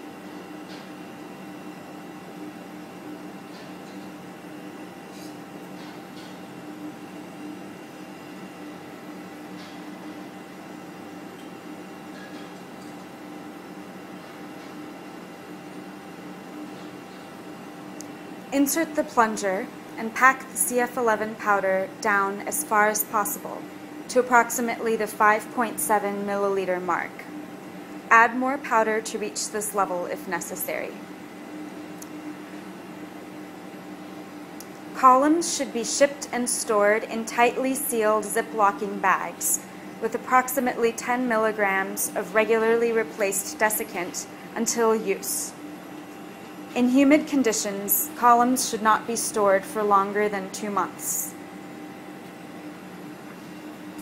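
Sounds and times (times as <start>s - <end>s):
machine hum: 0.0s - 54.0s.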